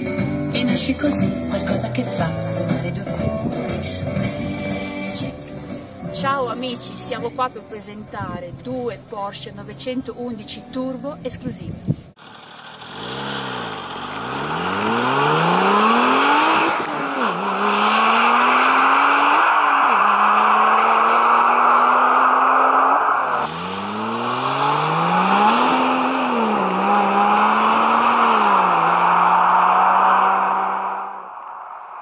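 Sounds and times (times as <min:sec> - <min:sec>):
sports car accelerating hard: 0:12.4 - 0:32.0.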